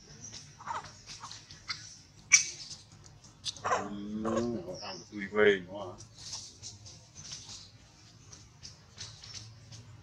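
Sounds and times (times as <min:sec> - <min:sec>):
monkey squeaks and chirps: 0:00.6 - 0:02.8.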